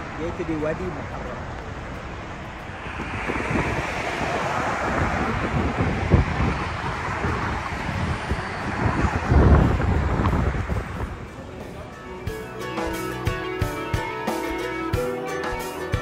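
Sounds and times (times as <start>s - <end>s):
wind buffeting microphone: 1.7s - 12.1s.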